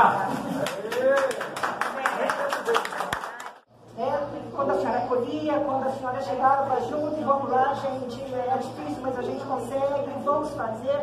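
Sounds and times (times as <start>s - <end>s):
people clapping: 0.0s - 3.7s.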